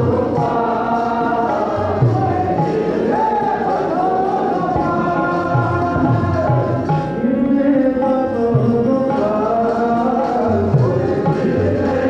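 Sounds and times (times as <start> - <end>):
group devotional singing: 0.0 - 12.0
sustained instrumental notes: 0.0 - 12.0.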